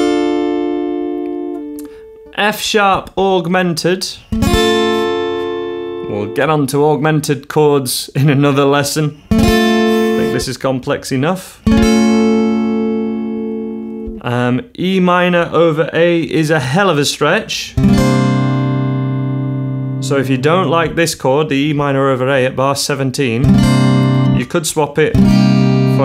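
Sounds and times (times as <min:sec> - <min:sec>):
acoustic guitar chord ringing: 0:00.0 - 0:02.4, 0:04.2 - 0:07.1, 0:09.1 - 0:10.6, 0:11.6 - 0:14.2, 0:17.8 - 0:21.1, 0:23.4 - 0:24.5, 0:25.1 - 0:26.0.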